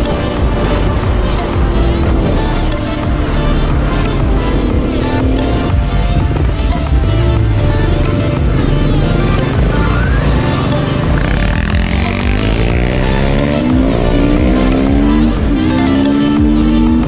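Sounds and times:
background music: 0.0 - 17.0
motorcycle engine accelerating: 0.0 - 17.0.

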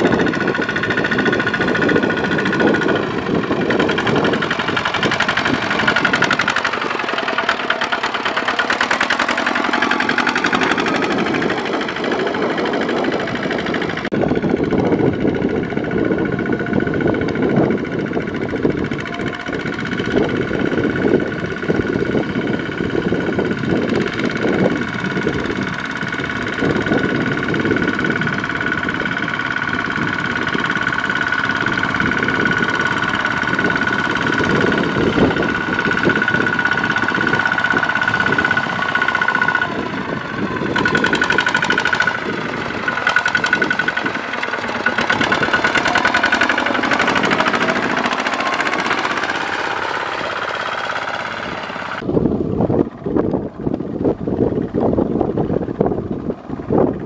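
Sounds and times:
diesel tractor engine running: 0.0 - 57.0.

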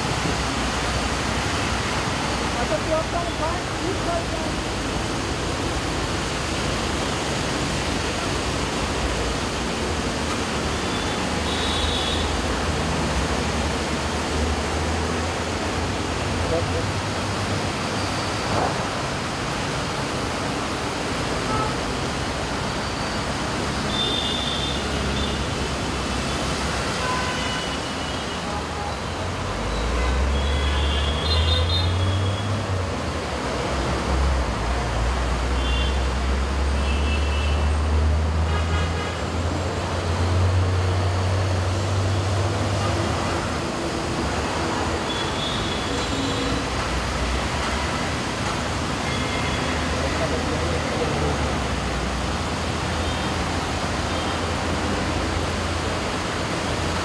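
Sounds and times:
road traffic passing: 0.0 - 57.0
steady rain hiss: 0.0 - 57.0.

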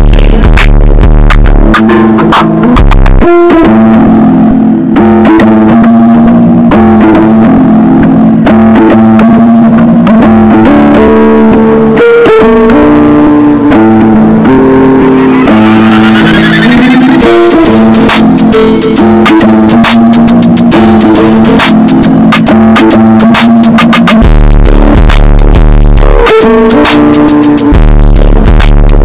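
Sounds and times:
held low notes: 0.0 - 5.1, 5.7 - 29.0
stepping melody: 0.0 - 8.5, 9.1 - 29.0
instrumental hip-hop beat: 0.0 - 29.0
rising sweep: 14.2 - 22.5.

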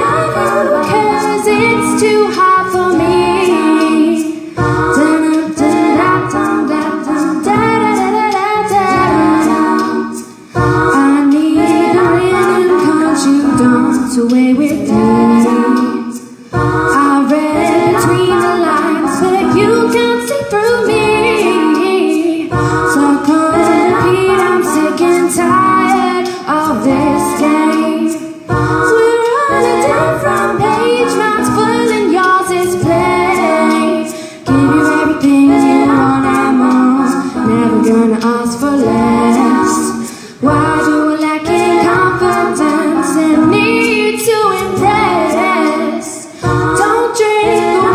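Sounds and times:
looped a cappella vocals: 0.0 - 47.9
woman singing live: 0.0 - 47.9.

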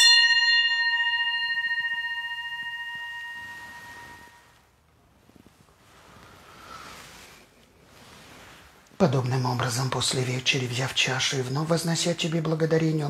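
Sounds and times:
altar bell ringing: 0.0 - 4.8.

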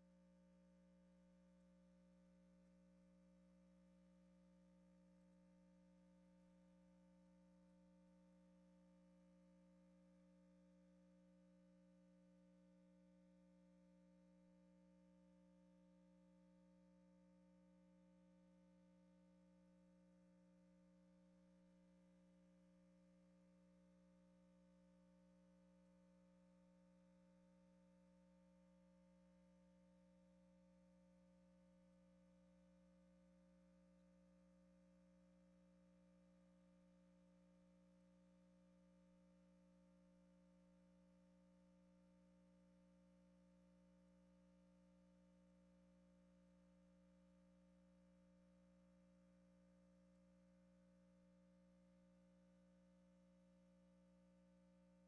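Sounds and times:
faint steady hum: 0.0 - 55.0.

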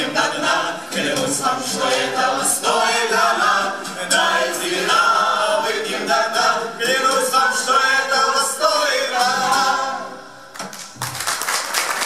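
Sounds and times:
group of voices singing: 0.0 - 10.5.

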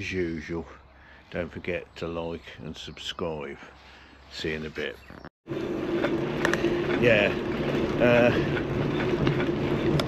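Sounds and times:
tyre and road noise: 3.8 - 10.0
electric bike motor hum: 5.5 - 10.0.

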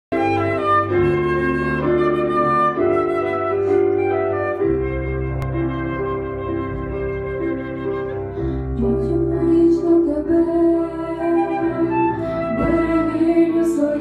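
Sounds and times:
flute playing slow melody: 0.1 - 8.8, 10.8 - 14.0.

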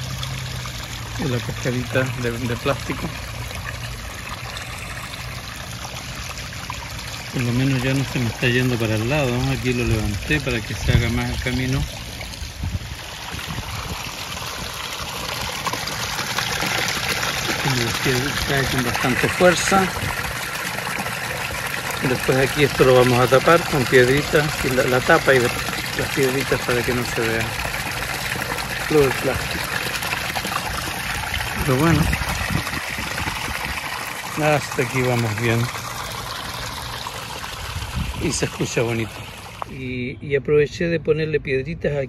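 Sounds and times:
water running over pebbles: 0.0 - 40.0
water splashing into basin: 0.0 - 40.0.

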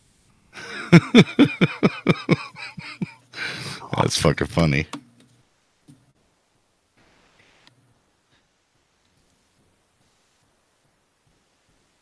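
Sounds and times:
man laughing hard: 0.6 - 3.9.

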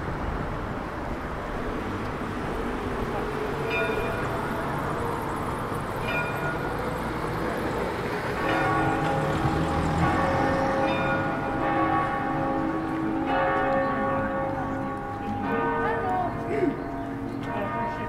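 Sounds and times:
light traffic noise: 0.0 - 18.0
church bells ringing: 2.8 - 18.0.

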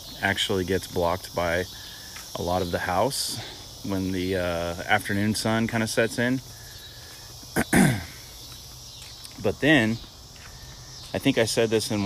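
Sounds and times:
crickets chirping: 0.0 - 12.0
man clearing his throat: 7.6 - 8.2.

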